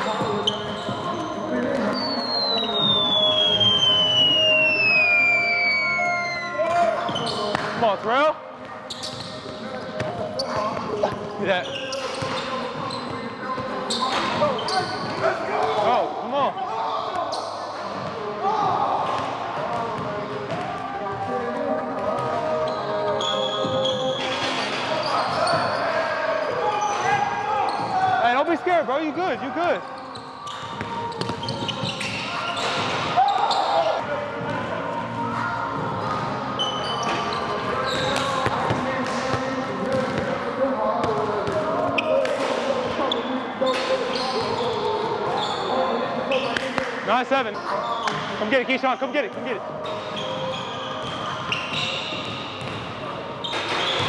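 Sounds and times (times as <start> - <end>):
players' voices: 0.0 - 54.0.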